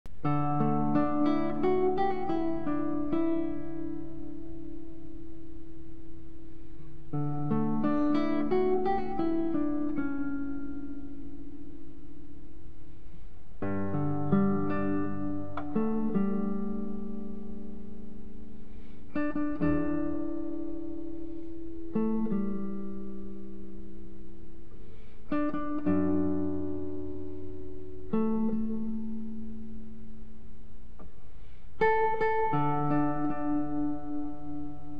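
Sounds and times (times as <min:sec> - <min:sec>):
classical guitar melody: 0:00.1 - 0:34.9.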